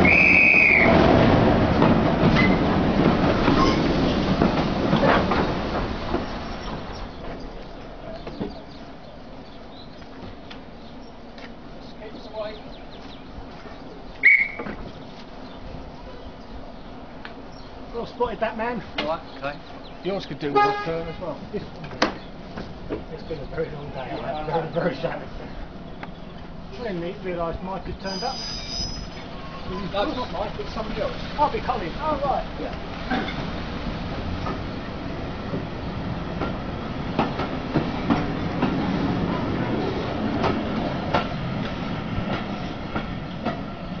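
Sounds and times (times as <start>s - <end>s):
shrill whistle blast: 0.0s - 0.9s, 14.2s - 14.7s, 28.1s - 29.2s
train coaches rumbling past: 0.0s - 44.0s
wheels clicking over rail joints: 0.1s - 8.7s, 27.8s - 44.0s.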